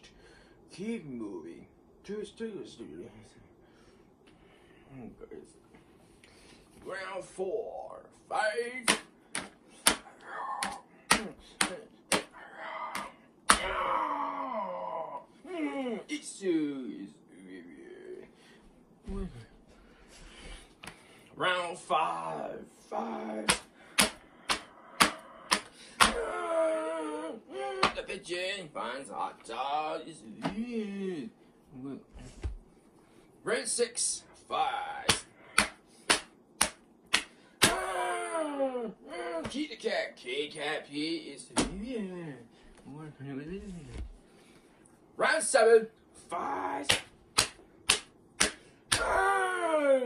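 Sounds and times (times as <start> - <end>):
sharp smacks: 8.8 - 13.8, 23.5 - 26.2, 35.0 - 37.8, 46.9 - 49.1.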